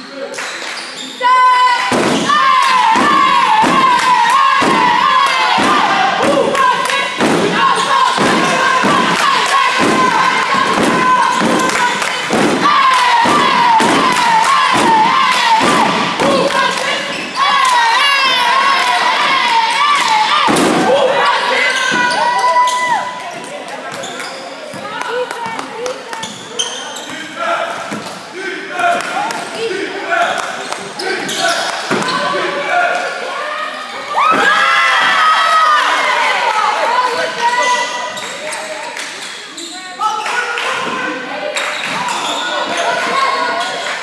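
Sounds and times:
shoe squeals on gym floor: 0.0 - 1.4, 21.2 - 23.1, 23.9 - 24.9, 26.2 - 28.2, 30.6 - 32.4, 37.4 - 40.4, 41.6 - 44.0.

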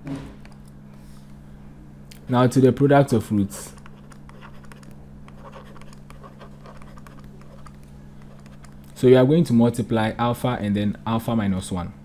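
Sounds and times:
low electrical hum: 0.0 - 12.0
stylus scratching on tablet: 3.4 - 8.8.

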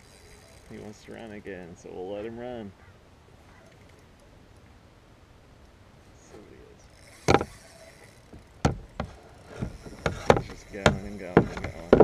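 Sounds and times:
knocks against kayak hull: 8.6 - 12.0.

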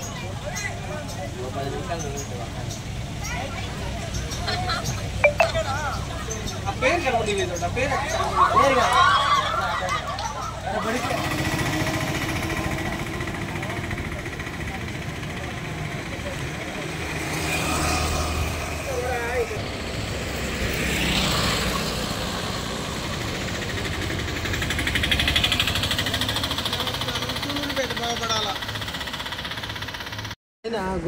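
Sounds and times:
faint voices talking: 0.0 - 19.8
vehicle engine rumbling: 10.1 - 30.4.

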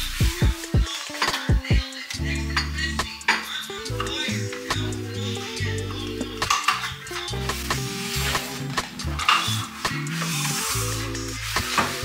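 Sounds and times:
background music with bass: 0.0 - 12.0
hissing stirring noise: 0.0 - 12.0
dishes clinking and scraping: 6.2 - 10.8.

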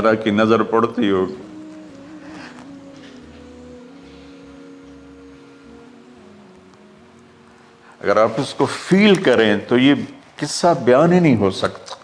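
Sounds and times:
soft droning background music: 0.0 - 11.7.

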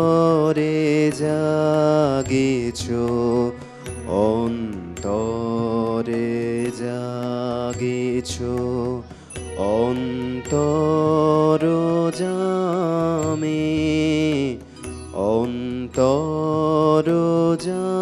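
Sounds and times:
harmonium: 0.0 - 18.0
man singing: 0.0 - 18.0
singer breathing: 9.0 - 9.4, 14.6 - 15.1.

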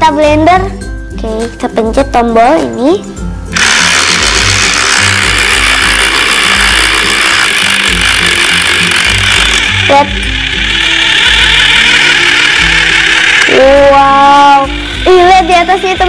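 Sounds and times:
small blender motor running: 3.5 - 16.0.

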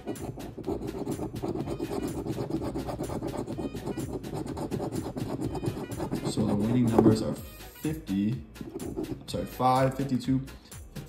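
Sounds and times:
coin scraping scratch-off ticket: 0.0 - 6.9.

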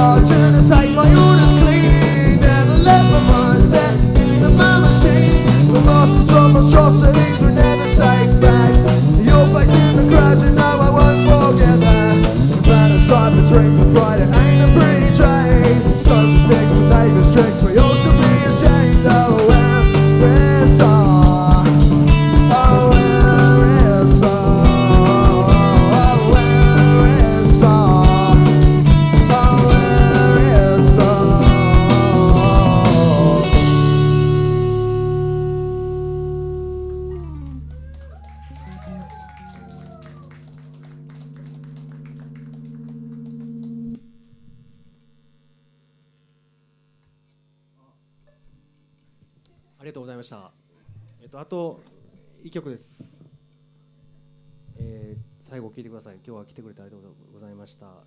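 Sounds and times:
steady drum beat: 0.0 - 34.9
rock band playing live: 0.0 - 37.9
sliding guitar melody: 0.0 - 44.9.

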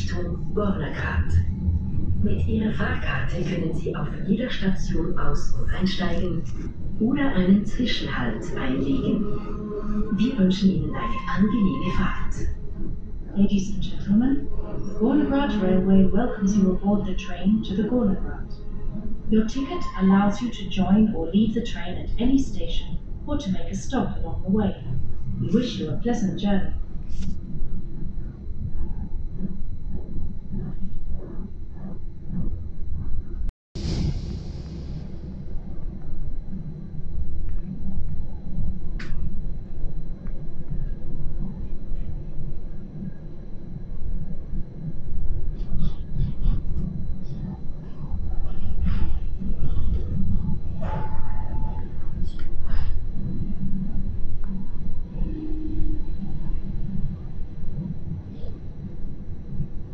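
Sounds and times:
train carriage low rumble: 0.0 - 59.9.

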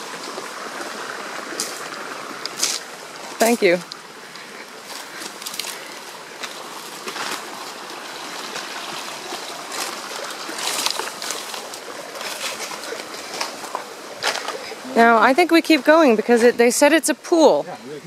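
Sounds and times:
footsteps on brushy trail: 0.0 - 14.9
stream trickling: 0.0 - 18.0.

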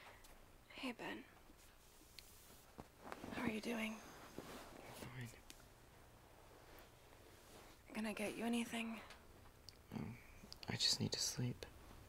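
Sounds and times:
person whispering: 4.8 - 5.4, 9.9 - 11.7.

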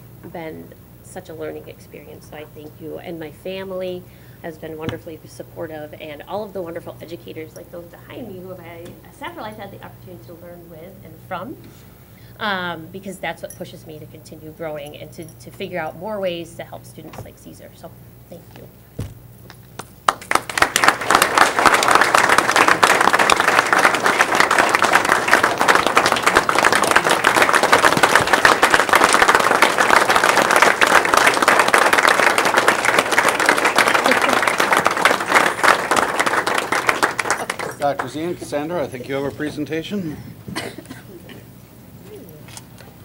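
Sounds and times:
people applauding: 19.8 - 38.9
person coughing: 40.5 - 41.5.

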